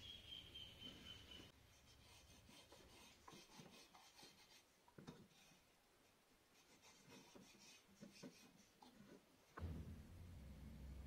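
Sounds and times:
pencil scratching on wood: 0:01.7 - 0:05.6, 0:06.6 - 0:09.2.

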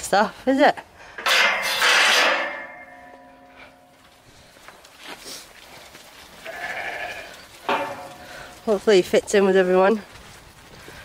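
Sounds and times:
sheep bleating: 0:06.4 - 0:07.4.

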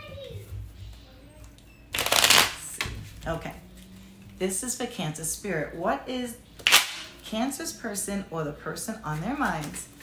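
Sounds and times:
cards being shuffled: 0:09.1 - 0:10.0.

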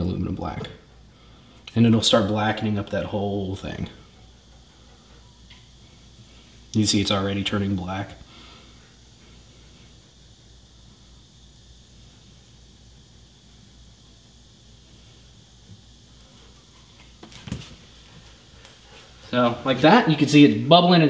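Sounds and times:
faint low hum: 0:00.0 - 0:21.0.

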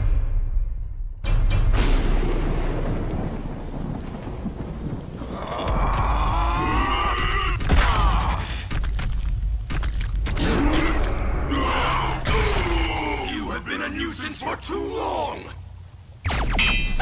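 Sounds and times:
dramatic music: 0:00.0 - 0:03.5
thunder-like rumble: 0:01.8 - 0:08.7.

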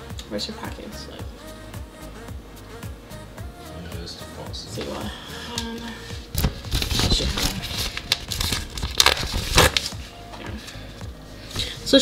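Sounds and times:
background music: 0:00.0 - 0:12.0
paper packaging crinkling: 0:06.3 - 0:10.0.

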